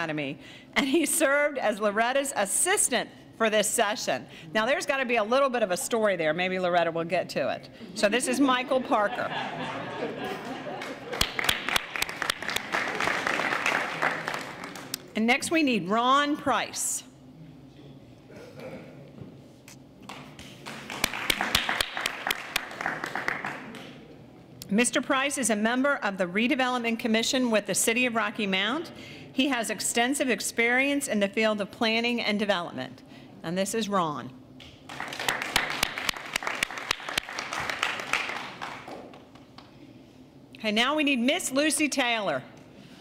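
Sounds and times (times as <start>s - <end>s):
audience applauding: 10.4s - 15.1s, 20.1s - 24.0s, 34.9s - 39.7s.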